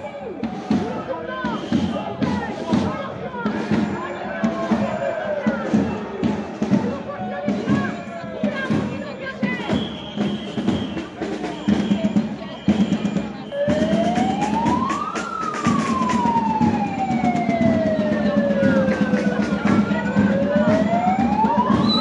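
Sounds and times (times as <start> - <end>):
crowd of marchers: 0.0 - 22.0
siren wailing: 13.5 - 22.0.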